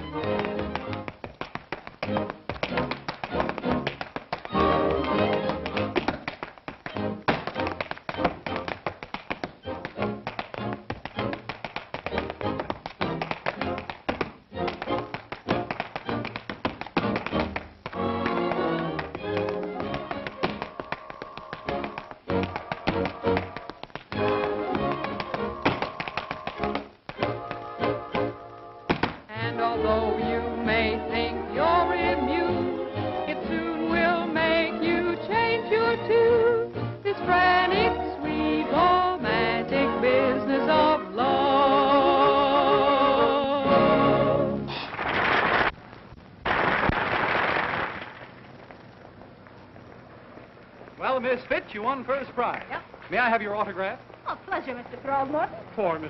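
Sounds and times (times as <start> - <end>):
rapid tap-dance steps: 0.0 - 29.4, 46.4 - 55.4
lively dance-band music: 0.0 - 41.4.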